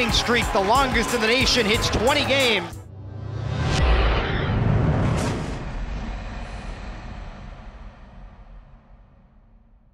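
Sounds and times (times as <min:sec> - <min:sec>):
deep rumble: 0:02.8 - 0:09.9.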